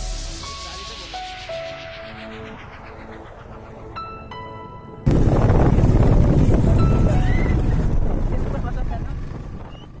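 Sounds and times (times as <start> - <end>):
vehicle rumble: 0.1 - 10.0
wind buffeting microphone: 5.0 - 10.0.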